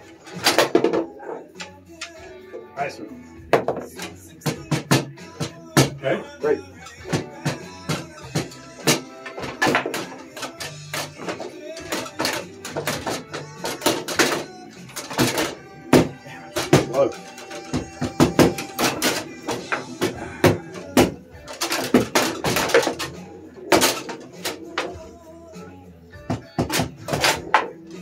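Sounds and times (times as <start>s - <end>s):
background music: 0.0s - 28.0s
foosball ball knocks and clacks: 0.3s - 2.2s, 3.5s - 6.0s, 7.1s - 25.0s, 26.3s - 28.0s.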